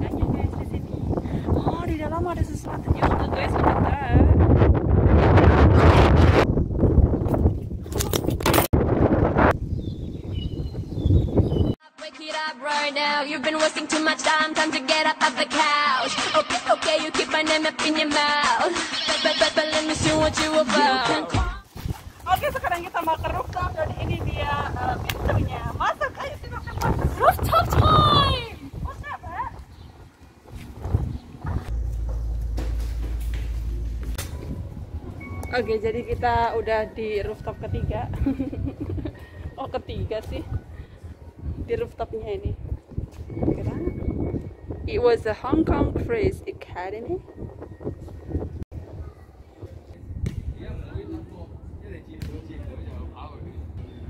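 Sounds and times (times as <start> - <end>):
wind buffeting microphone: 0.0 - 11.8, 21.6 - 54.0
footsteps: 29.5 - 35.2
steady low rumble: 30.0 - 42.9.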